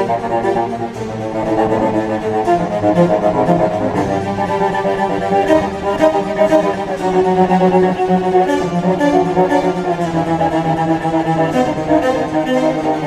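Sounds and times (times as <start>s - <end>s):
bowed cello melody: 0.0s - 13.0s.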